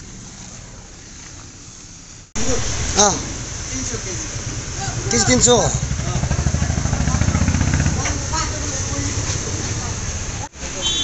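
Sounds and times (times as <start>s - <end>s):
vehicle engine idling: 0.0s - 10.5s.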